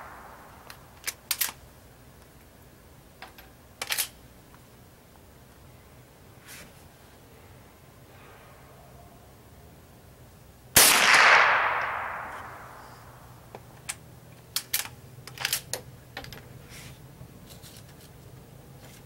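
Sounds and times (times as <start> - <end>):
rifle shot: 0.0 - 0.5, 10.8 - 13.2.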